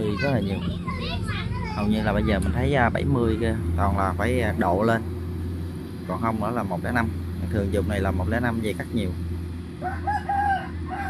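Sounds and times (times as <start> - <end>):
combine harvester drone: 0.0 - 11.0
rooster crowing: 9.8 - 11.0.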